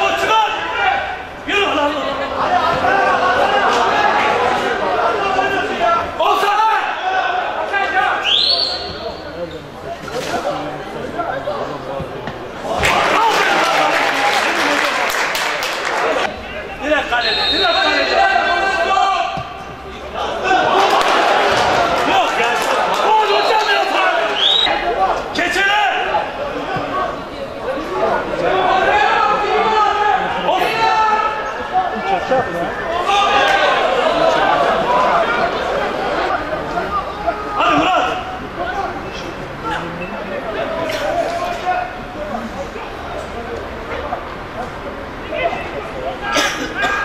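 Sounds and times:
players shouting: 0.0 - 9.5, 10.8 - 47.0.

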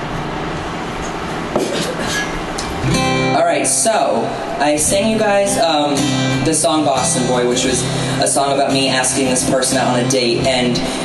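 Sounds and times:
acoustic guitar chord strummed: 2.0 - 11.0.

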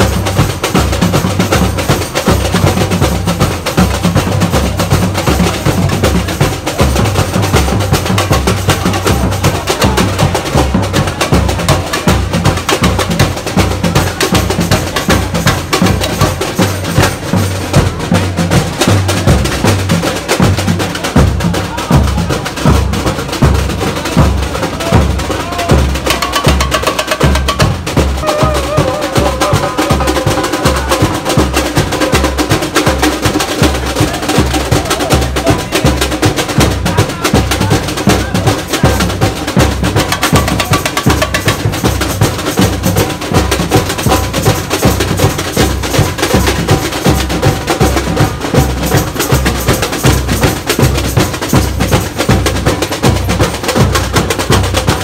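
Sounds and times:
samba percussion group: 0.0 - 55.0
sharp high drum strikes: 24.8 - 33.3.

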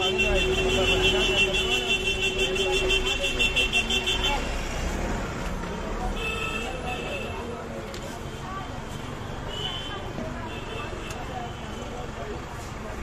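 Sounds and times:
street traffic rumble: 0.0 - 13.0.

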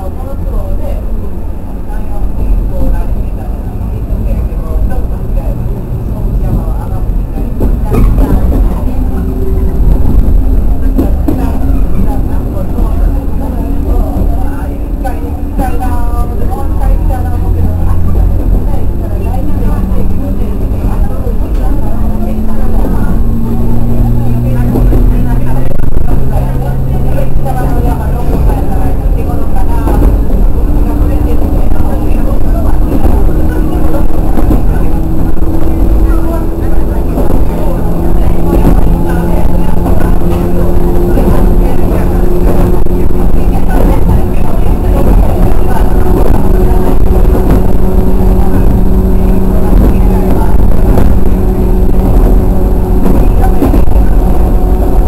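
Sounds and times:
wheel and track rumble: 0.0 - 55.0
electric train motor whine: 16.8 - 55.0.

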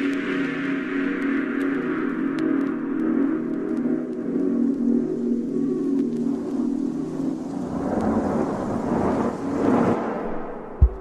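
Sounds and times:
rumbling noise wash: 7.5 - 11.0.

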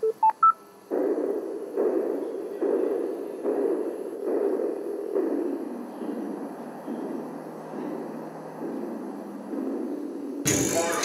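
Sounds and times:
pulsing muffled hiss: 0.0 - 11.0.

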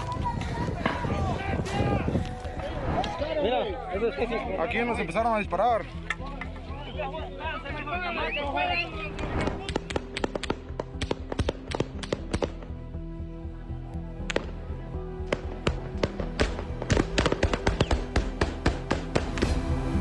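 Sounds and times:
background music: 0.0 - 20.0
gunshots in rapid succession: 15.3 - 19.4.

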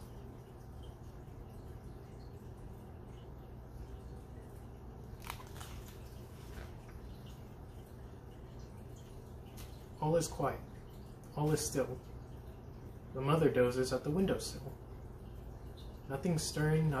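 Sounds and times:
low room hum: 0.0 - 17.0
book pages rustling: 5.2 - 7.0.

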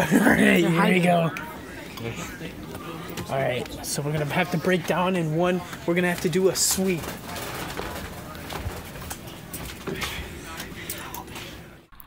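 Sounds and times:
muffled voices: 0.0 - 11.9
background noise: 0.0 - 12.0.

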